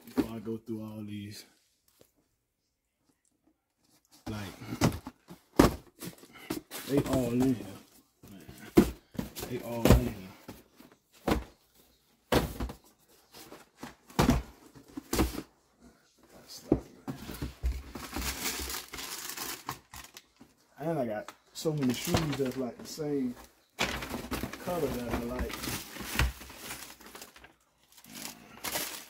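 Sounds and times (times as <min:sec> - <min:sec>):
man speaking: 0:00.1 - 0:01.5, 0:04.2 - 0:04.8, 0:06.8 - 0:07.9, 0:09.4 - 0:10.4, 0:20.8 - 0:23.4, 0:24.6 - 0:25.6
paper rustling and crinkling: 0:21.6 - 0:29.0.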